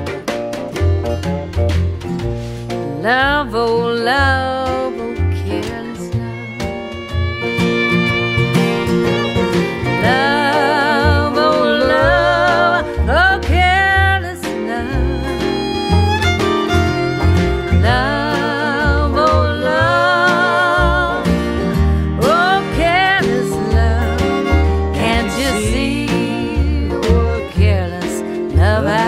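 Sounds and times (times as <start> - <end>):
acoustic guitar: 0.0 - 29.0
resonator guitar: 0.0 - 29.0
upright bass notes: 0.0 - 29.0
wavering lead line with vibrato: 3.0 - 29.0.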